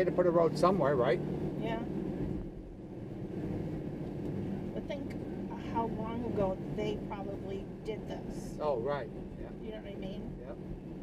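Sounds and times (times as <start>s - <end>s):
car road and engine rumble: 0.0s - 11.0s.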